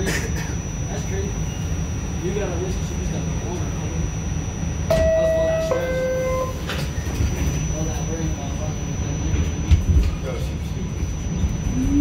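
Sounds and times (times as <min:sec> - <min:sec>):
subway car low rumble: 0:00.0 - 0:12.0
two-tone door chime: 0:04.9 - 0:06.8.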